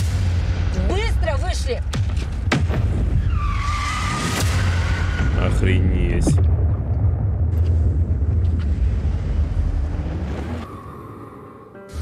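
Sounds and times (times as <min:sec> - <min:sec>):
car tyres screeching: 0:03.1 - 0:05.6
steady low rumble: 0:05.3 - 0:10.4.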